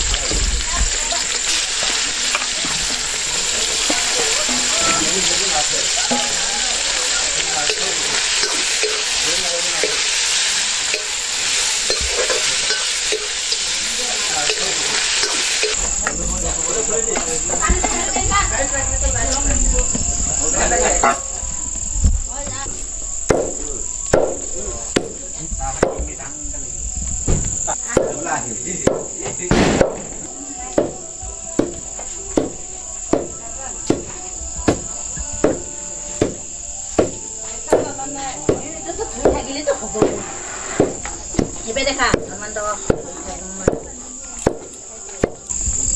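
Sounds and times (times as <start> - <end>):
crickets chirping: 0.0 - 45.9
meat sizzling in a wok: 0.0 - 45.9.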